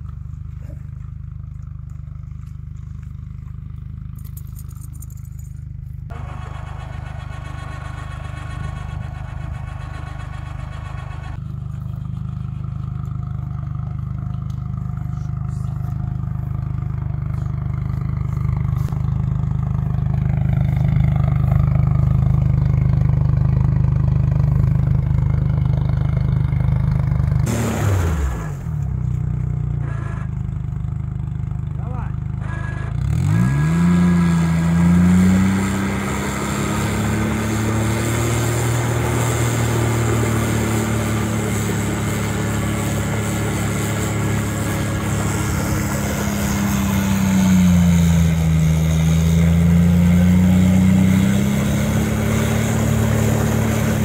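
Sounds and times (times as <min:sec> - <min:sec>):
atv engine running in mud: 0:00.0 - 0:31.4, 0:32.4 - 0:54.0.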